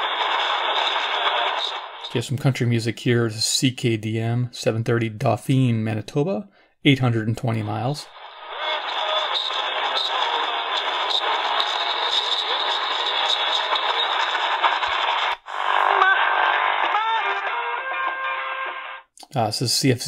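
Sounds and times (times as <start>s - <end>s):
radio gliding whistles: 0.0s - 2.2s, 8.1s - 19.0s
country music on radio: 0.0s - 2.6s, 7.6s - 19.0s
radio static hiss: 0.0s - 2.7s, 7.5s - 19.0s.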